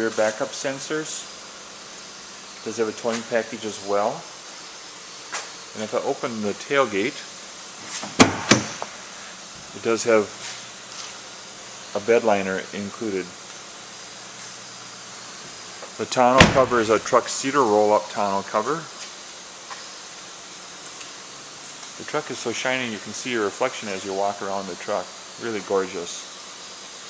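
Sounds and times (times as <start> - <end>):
room noise hiss: 0.0 - 27.0
tailgate clunks: 8.0 - 8.9, 16.4 - 16.8.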